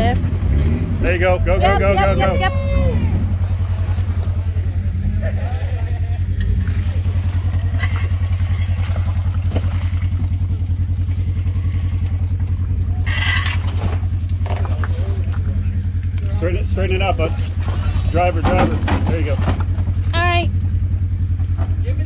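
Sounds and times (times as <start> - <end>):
car engine running: 0.0 - 22.0
person shouting: 1.6 - 3.2.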